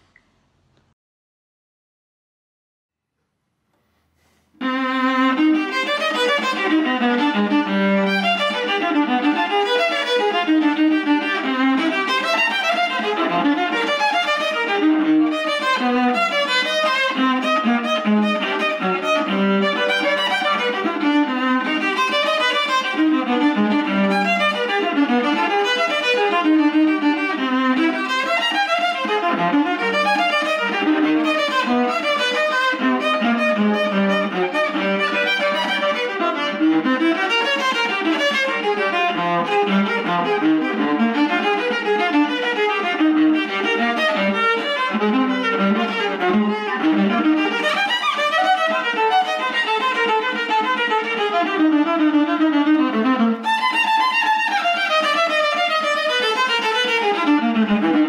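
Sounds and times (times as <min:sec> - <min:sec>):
bowed viola fast run: 0:04.6 - 0:58.0.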